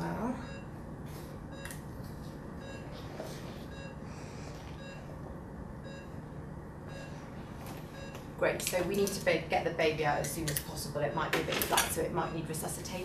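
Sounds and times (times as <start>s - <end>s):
low steady hum: 0.0s - 13.0s
pulse oximeter beeping: 2.6s - 5.2s, 6.8s - 8.3s.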